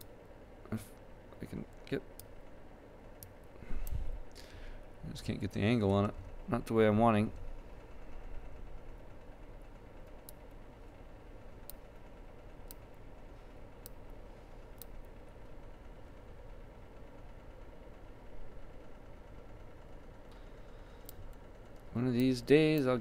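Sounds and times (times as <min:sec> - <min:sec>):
low background hum: 0:00.0 - 0:23.0.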